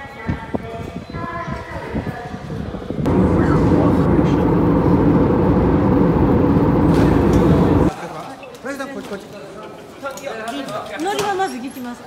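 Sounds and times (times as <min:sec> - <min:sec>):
airliner cabin engine drone: 0:03.0 - 0:07.9.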